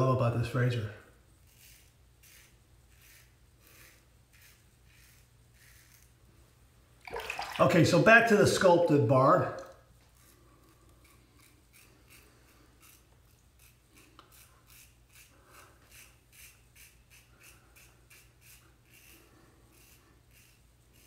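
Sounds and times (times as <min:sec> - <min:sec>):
razor scraping stubble: 0:00.0 - 0:06.3, 0:07.8 - 0:21.0.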